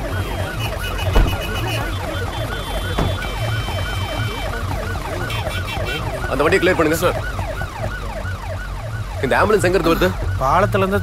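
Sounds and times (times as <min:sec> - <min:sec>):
ambulance siren yelping: 0:00.0 - 0:11.0.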